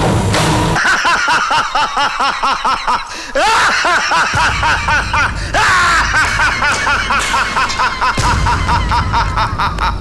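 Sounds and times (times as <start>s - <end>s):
background film music: 0.0s - 0.8s, 4.3s - 10.0s
high-pitched cackling laughter: 0.8s - 10.0s.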